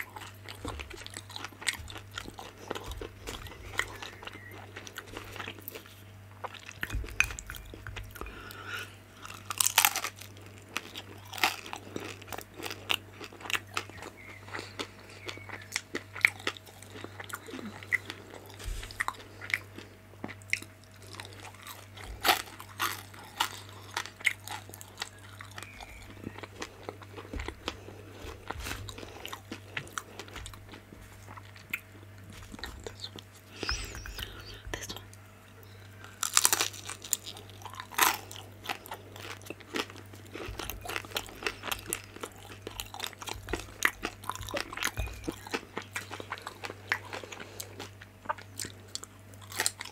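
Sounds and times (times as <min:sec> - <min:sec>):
crunchy chewing: 0:00.0 - 0:49.9
low steady hum: 0:00.0 - 0:49.9.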